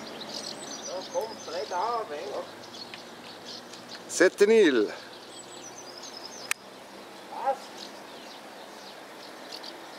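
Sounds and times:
small birds chirping: 0:00.0 - 0:09.9
steady background hiss: 0:00.0 - 0:09.9.

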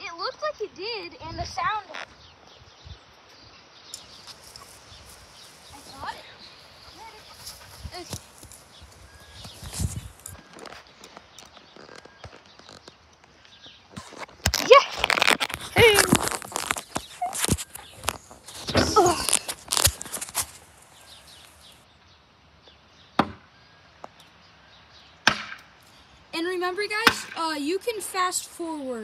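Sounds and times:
voices calling out loudly: 0:04.0 - 0:10.7
footsteps on dry grass: 0:04.0 - 0:21.8.

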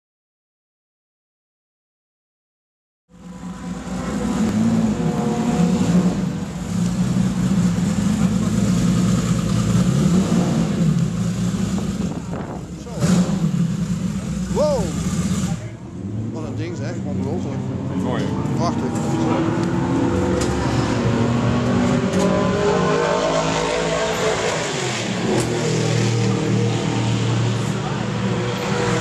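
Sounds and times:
car engine idling: 0:03.2 - 0:17.6
people talking: 0:08.0 - 0:09.0, 0:12.2 - 0:13.3, 0:14.2 - 0:19.6, 0:27.6 - 0:28.4.

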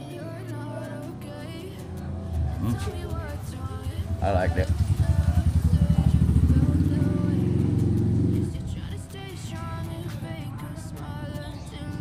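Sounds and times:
motorcycle engine running: 0:00.5 - 0:12.0.

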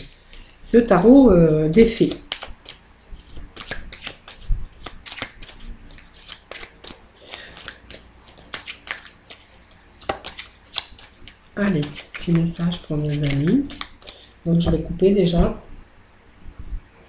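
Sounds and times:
cards being shuffled: 0:00.0 - 0:14.9.

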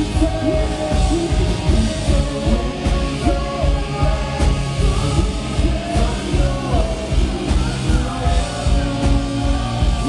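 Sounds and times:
man singing: 0:00.0 - 0:10.0
rock band playing: 0:00.0 - 0:10.0.

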